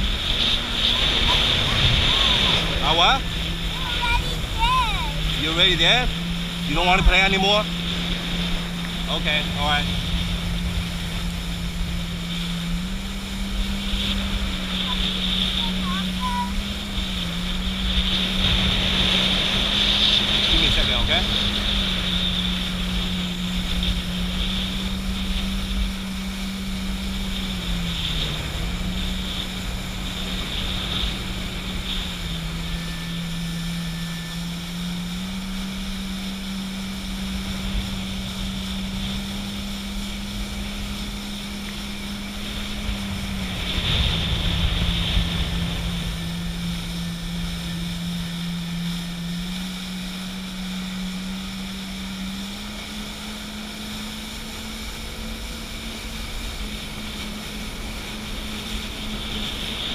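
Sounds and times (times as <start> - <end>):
jet ski engine running: 0.0 - 59.9
rushing water: 0.0 - 59.9
wind on microphone: 0.0 - 59.9.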